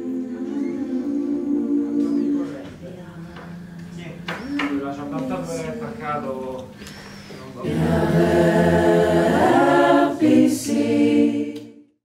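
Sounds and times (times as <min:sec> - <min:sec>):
voices singing held chords: 0:00.0 - 0:12.0.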